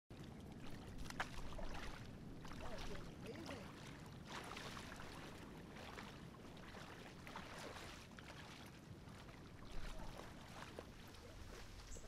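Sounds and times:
feet wading through water: 0:00.1 - 0:12.0.

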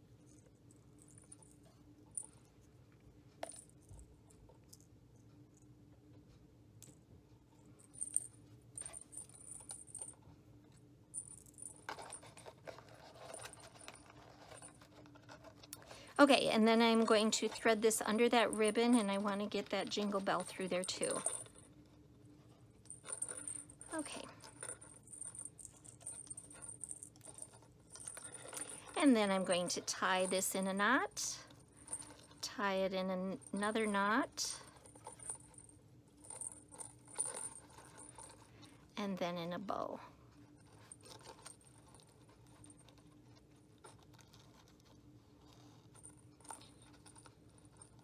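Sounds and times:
small jingle bell: 0:07.8 - 0:10.2, 0:16.2 - 0:21.7, 0:22.9 - 0:38.5.

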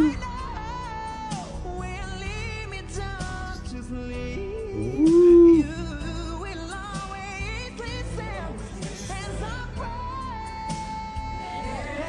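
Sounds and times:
man singing a pop ballad: 0:00.0 - 0:12.0
soft backing music: 0:00.0 - 0:12.0.

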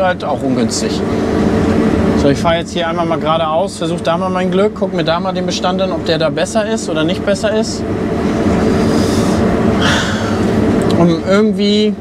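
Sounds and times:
combine harvester engine drone: 0:00.0 - 0:12.0.

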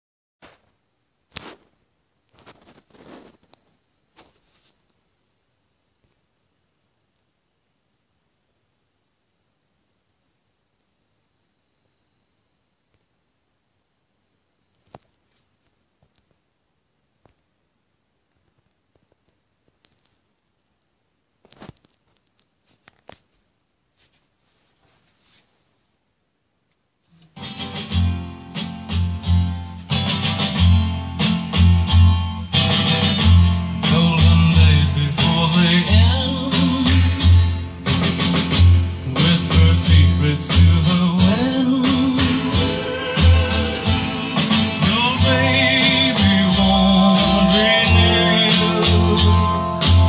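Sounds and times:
rustling handling noises: 0:00.4 - 0:05.0, 0:21.4 - 0:25.8.

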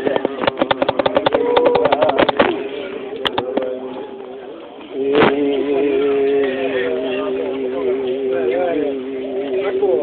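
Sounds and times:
voices chanting long notes: 0:04.9 - 0:10.0.

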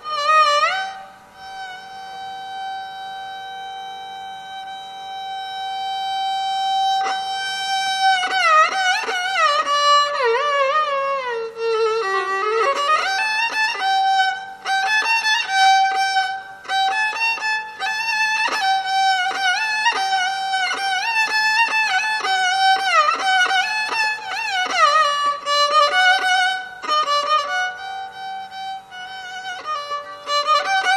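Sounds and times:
violin with ornamented slides: 0:00.0 - 0:30.9.

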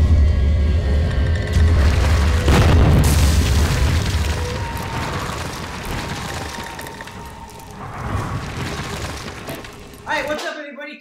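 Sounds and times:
deep rumble: 0:00.0 - 0:10.0
heavy boom: 0:01.6 - 0:06.6.

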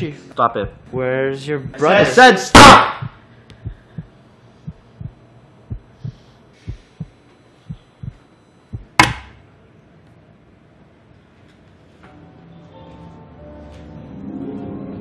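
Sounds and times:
heartbeat thumps: 0:00.5 - 0:01.0, 0:01.6 - 0:01.9, 0:02.6 - 0:09.2.

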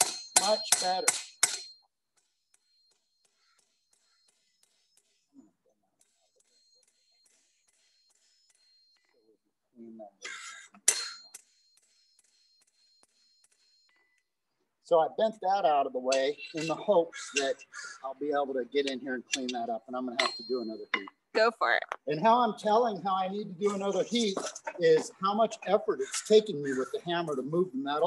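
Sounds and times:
hammer striking metal: 0:00.0 - 0:01.8, 0:18.8 - 0:21.1.

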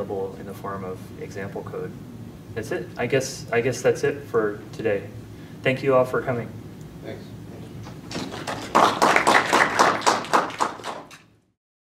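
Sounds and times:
small group clapping: 0:07.8 - 0:11.3.

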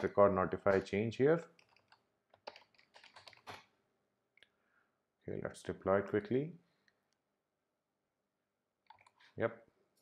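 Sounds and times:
computer keyboard keystrokes: 0:01.6 - 0:03.7, 0:08.8 - 0:09.2.

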